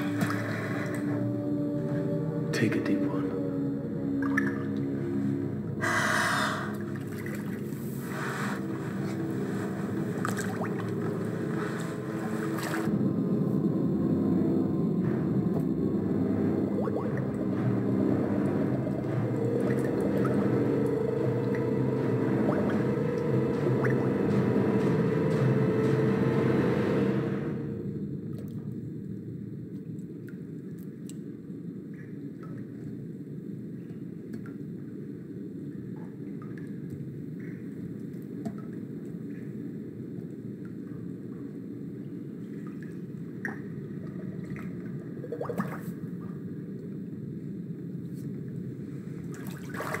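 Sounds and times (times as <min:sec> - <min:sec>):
faint water drips: 0:00.0 - 0:05.0, 0:06.7 - 0:12.9, 0:35.7 - 0:47.0
low droning film music: 0:00.0 - 0:50.0
muffled underwater rumble: 0:00.0 - 0:50.0.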